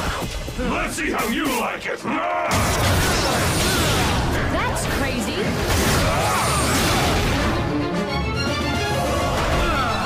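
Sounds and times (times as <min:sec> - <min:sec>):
shouts and grunts: 0:00.7 - 0:04.2, 0:08.9 - 0:10.0
soundtrack music: 0:02.6 - 0:10.0.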